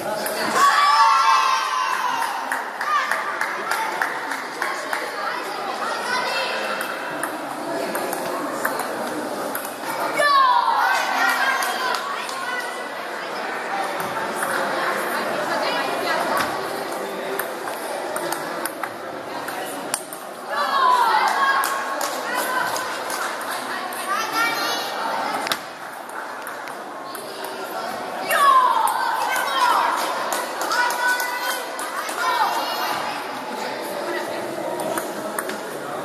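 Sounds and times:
indistinct chatter in a hall: 0:00.0 - 0:36.0.

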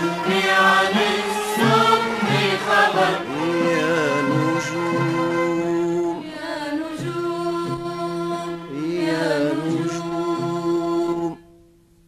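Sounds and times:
orchestra of violins and ouds: 0:00.0 - 0:11.4.

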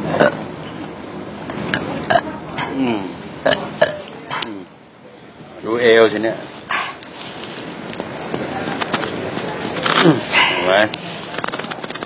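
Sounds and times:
person burping: 0:00.2 - 0:00.4, 0:01.7 - 0:04.7.

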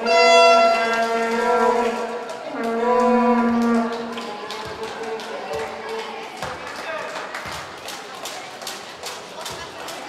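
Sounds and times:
vuvuzela blasts: 0:00.0 - 0:04.2.

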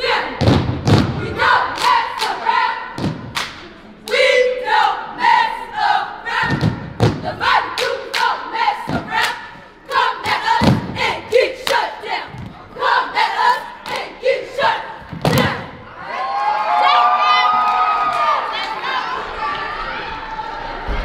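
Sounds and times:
cheerleaders shouting a chant: 0:00.0 - 0:20.9.

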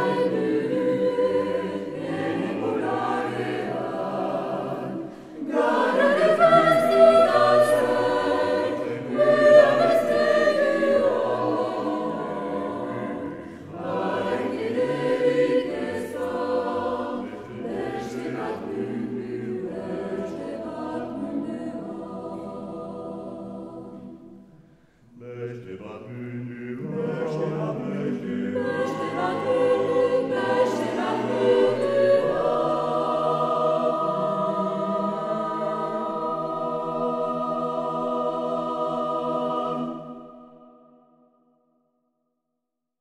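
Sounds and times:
a cappella choir singing: 0:00.0 - 0:41.4
singers breathing: 0:05.0 - 0:05.4, 0:13.4 - 0:13.8, 0:24.4 - 0:25.2.

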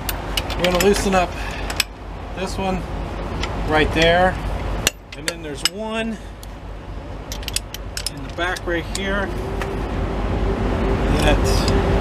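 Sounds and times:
low steady rumble: 0:00.0 - 0:12.0.

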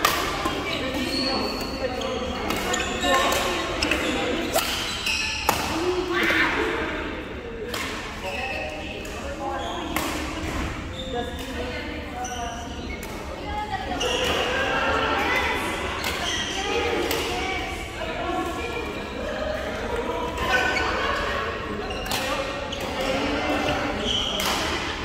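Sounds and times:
echoing overlapping voices: 0:00.0 - 0:25.0.

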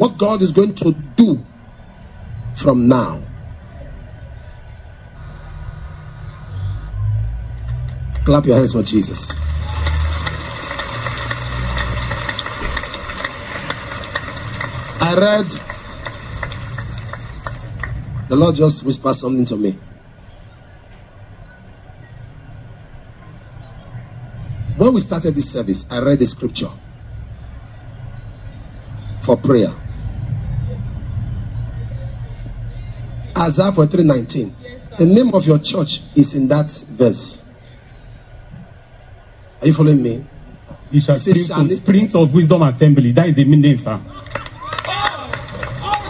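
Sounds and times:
low hum: 0:01.5 - 0:08.6
crowd clapping: 0:09.2 - 0:18.2, 0:44.2 - 0:46.0.

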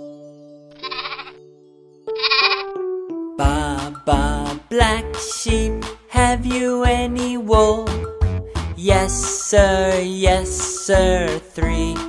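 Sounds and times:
sheep bleat: 0:00.8 - 0:01.4, 0:02.2 - 0:02.7.

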